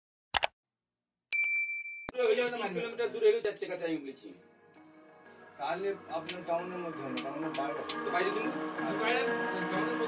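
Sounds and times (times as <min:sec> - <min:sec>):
bright bell-like ding: 0:01.3 - 0:02.2.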